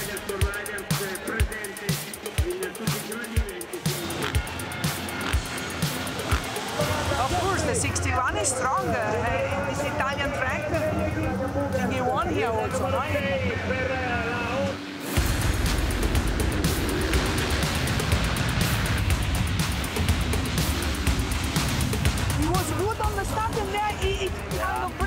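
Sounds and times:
motocross bikes at full throttle: 0.0s - 25.0s.

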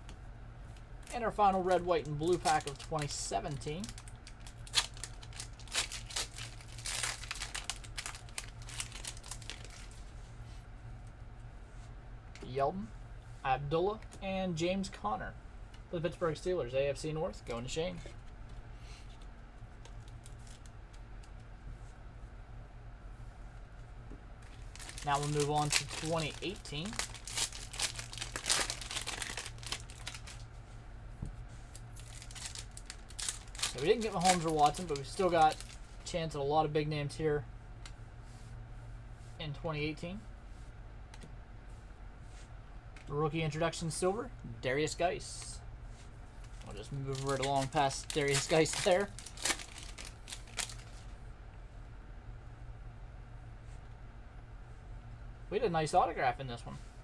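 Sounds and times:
foil wrapper crinkling: 1.0s - 10.2s, 19.8s - 20.7s, 24.4s - 30.5s, 31.7s - 35.8s, 46.4s - 51.1s.

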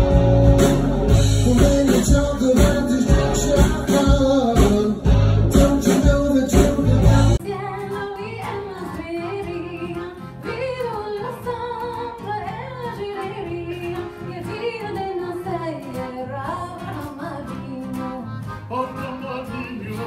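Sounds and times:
accordion: 0.0s - 20.0s
acoustic guitar: 0.0s - 20.0s
woman singing: 5.6s - 18.4s.

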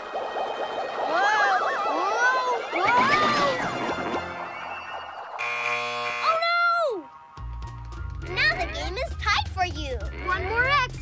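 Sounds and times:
game show buzzer: 5.4s - 6.3s
music: 7.0s - 11.0s.

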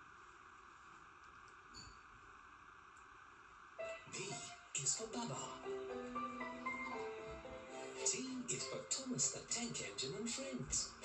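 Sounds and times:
faint tape hiss: 0.0s - 11.0s
music: 3.8s - 11.0s.

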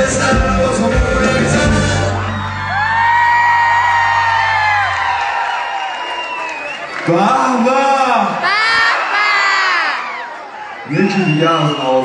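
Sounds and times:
live pop band playing: 0.0s - 5.0s
person whooping: 8.4s - 10.3s.

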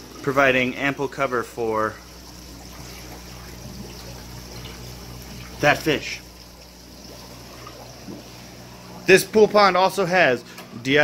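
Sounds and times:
water trickling into pool: 0.0s - 9.6s
pump humming: 0.0s - 11.0s.

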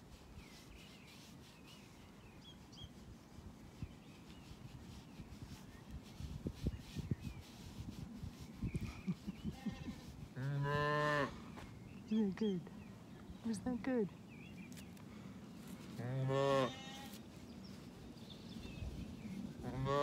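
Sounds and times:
gloved hand scratching fleece: 0.0s - 10.7s, 15.6s - 20.0s.

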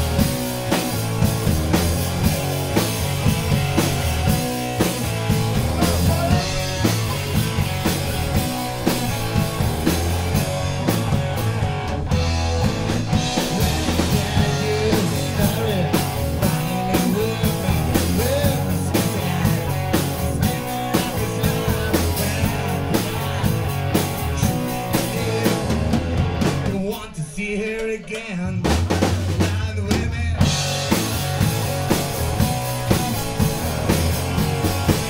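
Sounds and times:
drum kit: 0.0s - 35.0s
rock band playing live: 0.0s - 35.0s.

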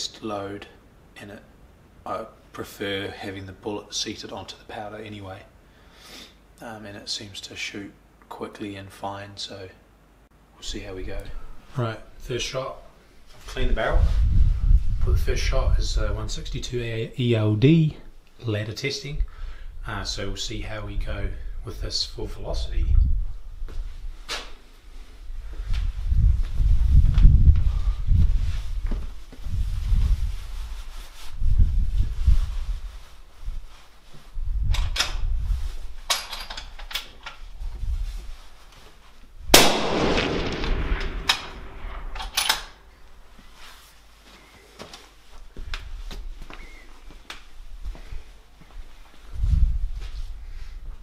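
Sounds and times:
suppressed rifle shot: 39.5s - 42.2s
low rumbles: 39.5s - 42.8s.

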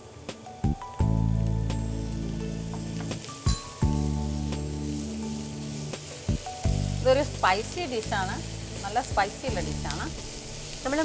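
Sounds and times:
background music: 0.0s - 11.0s
onions sizzling in hot oil: 0.0s - 11.0s.

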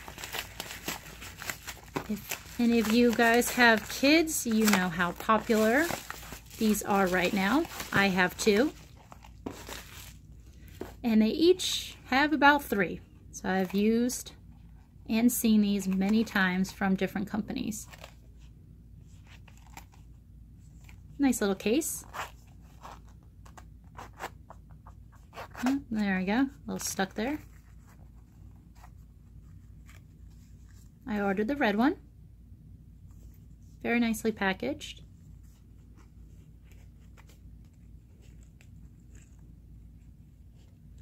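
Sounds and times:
hands rustling fabric case: 0.0s - 11.0s
low room hum: 0.0s - 41.0s.

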